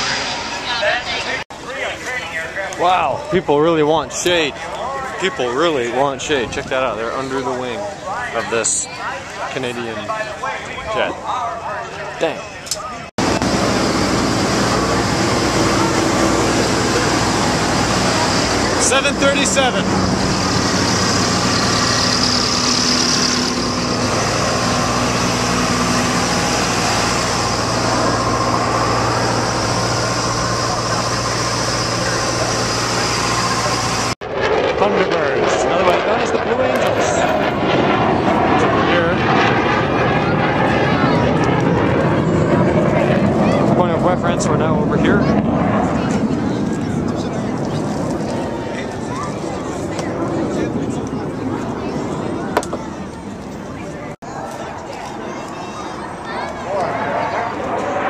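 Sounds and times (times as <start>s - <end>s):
crowd voices: 0.0s - 58.0s
jet aircraft flying overhead: 0.0s - 58.0s
mechanical drone with low hum: 13.2s - 48.9s.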